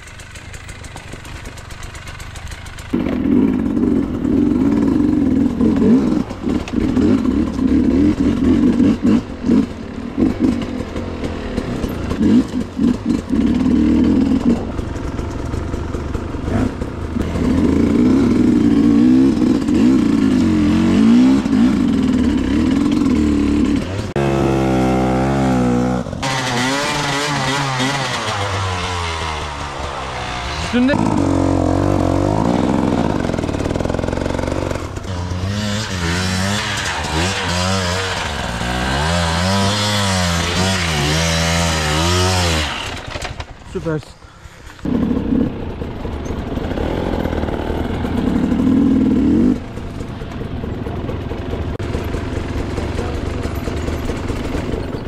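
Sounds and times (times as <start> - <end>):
close engine whining: 0.0 - 55.0
dirt bike engines revving: 0.0 - 55.0.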